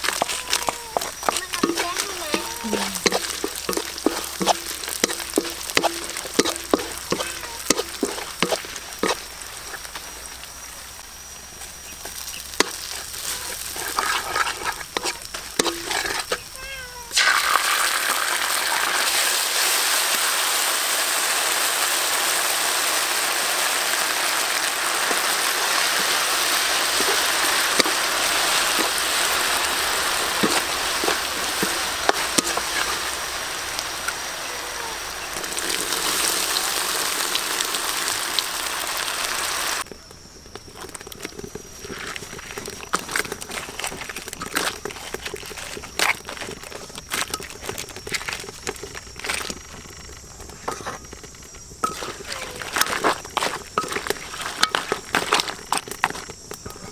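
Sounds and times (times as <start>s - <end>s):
spatula scraping a wok: 0.0s - 10.0s, 11.9s - 17.3s, 25.0s - 37.6s, 40.6s - 56.9s
garlic frying in oil: 0.0s - 56.9s
loud steady sizzle: 0.0s - 56.9s.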